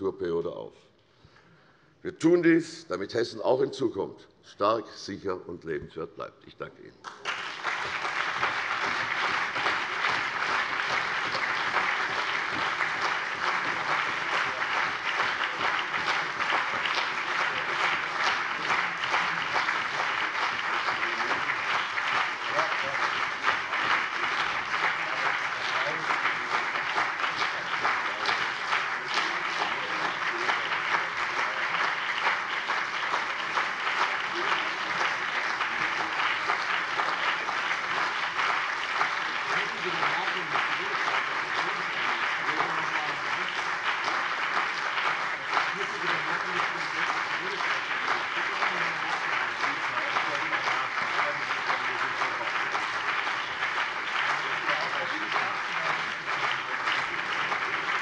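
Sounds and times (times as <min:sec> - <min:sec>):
steady applause: 0:07.0 - 0:58.0.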